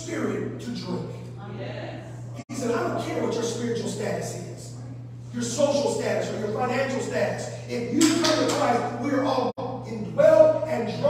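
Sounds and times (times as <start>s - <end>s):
man preaching: 0.0s - 1.2s, 2.5s - 11.0s
steady low hum: 0.0s - 11.0s.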